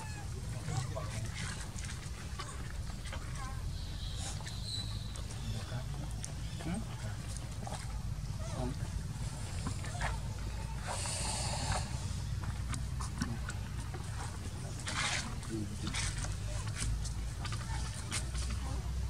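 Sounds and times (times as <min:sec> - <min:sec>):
faint voices: 0:00.0 - 0:19.0
low rumble: 0:00.0 - 0:19.0.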